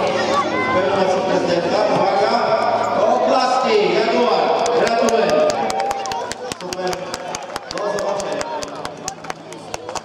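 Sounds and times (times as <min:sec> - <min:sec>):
people clapping unevenly: 0:04.6 - 0:10.0.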